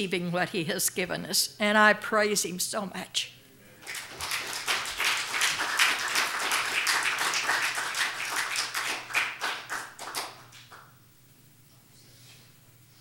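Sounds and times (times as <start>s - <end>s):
congregation applauding: 3.8s - 11.0s.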